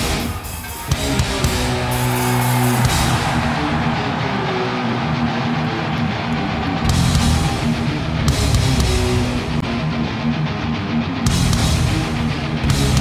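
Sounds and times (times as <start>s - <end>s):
distorted electric guitars: 0.0s - 13.0s
heavy metal band playing: 0.0s - 13.0s.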